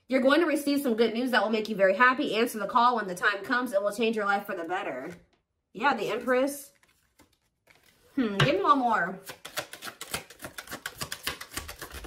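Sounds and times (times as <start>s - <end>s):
cards being shuffled: 6.0s - 8.2s, 9.2s - 12.0s.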